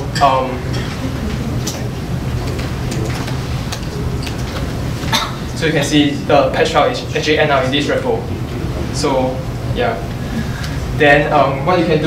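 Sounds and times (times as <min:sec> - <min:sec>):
low room and microphone hum: 0:00.0 - 0:12.0.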